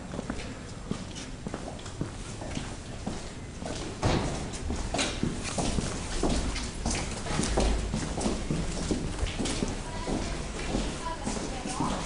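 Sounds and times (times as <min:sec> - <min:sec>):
footsteps on hard floor: 0:00.2 - 0:12.0.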